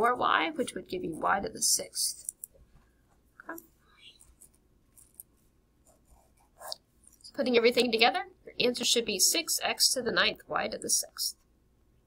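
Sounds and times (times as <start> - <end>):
pen scratching on paper: 4.2 - 6.8.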